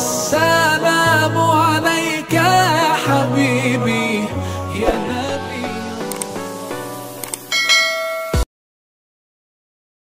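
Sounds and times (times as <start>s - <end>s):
mouse clicks: 7.2s - 7.5s
bell ding: 7.5s - 8.5s.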